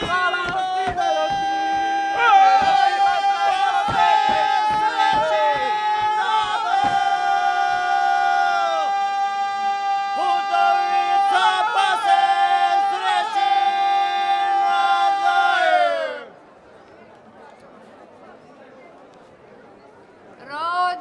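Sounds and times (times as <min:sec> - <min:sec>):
group singing in close harmony: 0:00.0 - 0:09.3, 0:10.1 - 0:16.3
faint crowd murmur: 0:00.0 - 0:21.0.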